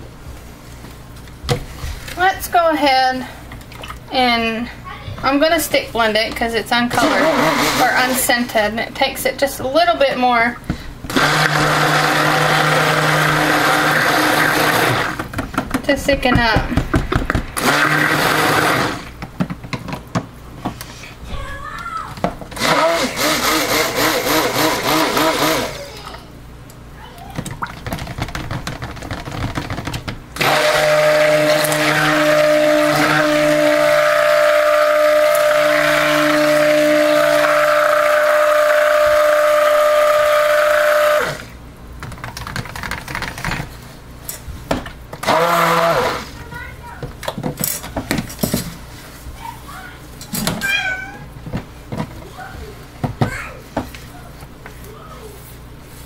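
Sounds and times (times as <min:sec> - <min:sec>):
stick blender running: 0:06.9 - 0:08.3, 0:11.1 - 0:19.2, 0:22.5 - 0:26.2, 0:29.8 - 0:41.6, 0:45.1 - 0:46.5.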